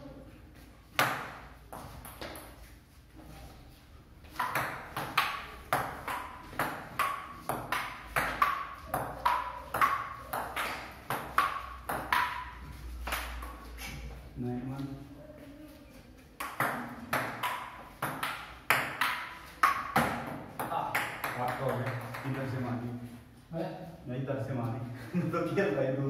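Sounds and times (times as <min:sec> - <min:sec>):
table tennis ball knocking: 0:04.3 - 0:13.6, 0:16.4 - 0:22.4.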